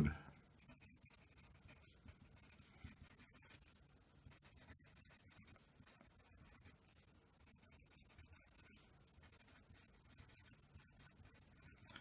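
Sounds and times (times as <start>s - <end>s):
pencil scratching on paper: 0.6s - 12.0s.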